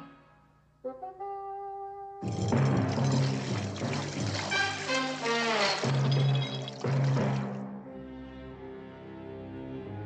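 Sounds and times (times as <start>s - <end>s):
film score music: 0.0s - 10.0s
bubbling rushing water: 2.2s - 7.6s.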